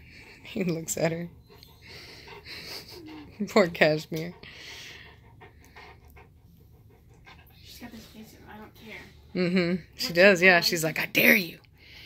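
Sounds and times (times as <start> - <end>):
dog panting: 0.0 - 11.5.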